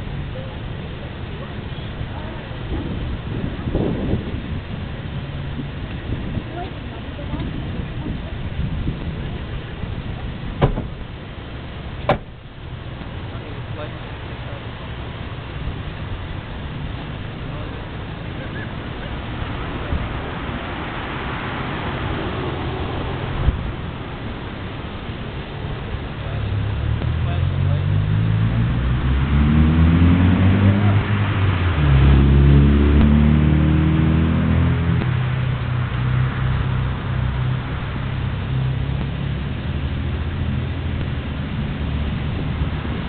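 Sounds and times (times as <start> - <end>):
distant road traffic rumble: 0.0 - 43.0
car driving past: 17.0 - 43.0.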